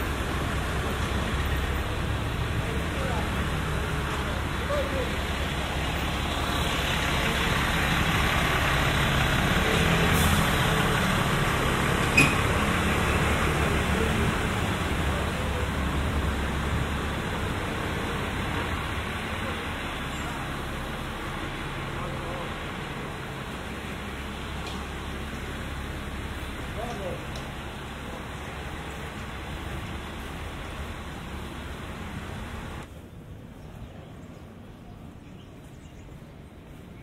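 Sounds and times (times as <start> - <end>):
motor vehicle passing: 0.0 - 32.9.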